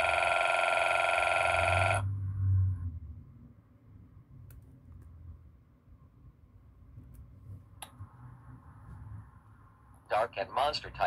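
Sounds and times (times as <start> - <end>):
trilling electronic ring: 0.0 - 2.0.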